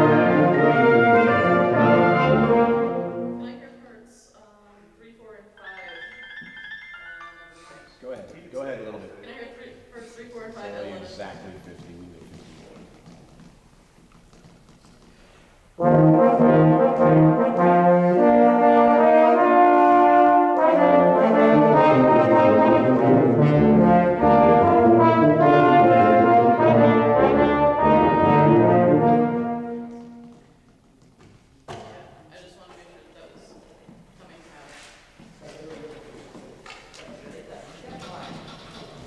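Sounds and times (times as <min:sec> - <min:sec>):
wind band playing brass chords: 0:00.0 - 0:03.6, 0:15.8 - 0:30.5.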